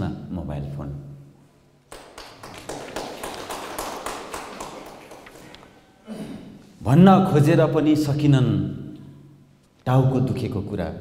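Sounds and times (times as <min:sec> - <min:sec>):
audience clapping: 0:01.9 - 0:05.9.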